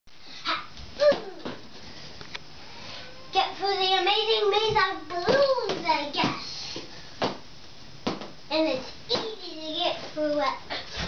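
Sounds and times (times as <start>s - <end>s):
young child crying: 1.0s - 1.5s.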